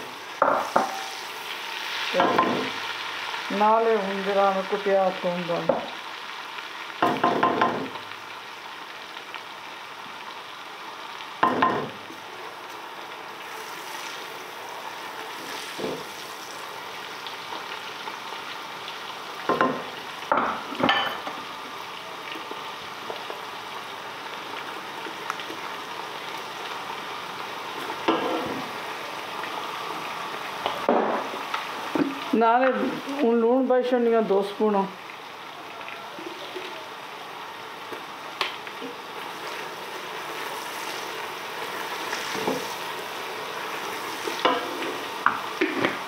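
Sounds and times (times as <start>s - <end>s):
vegetables sizzling in oil: 0.0s - 46.0s.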